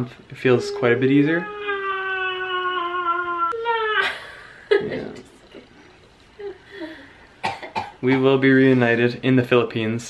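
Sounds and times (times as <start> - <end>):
person coughing: 7.4 - 8.2.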